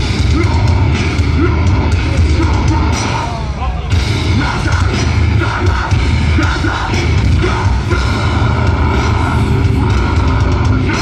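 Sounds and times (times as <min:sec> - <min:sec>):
distorted metal guitars and bass: 0:00.0 - 0:11.0.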